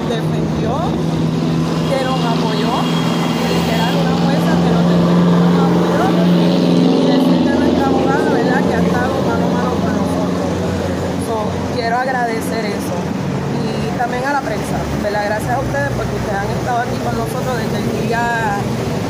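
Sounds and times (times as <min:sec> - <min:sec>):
people's voices: 0:00.0 - 0:19.0
vehicle engine humming: 0:00.0 - 0:19.0.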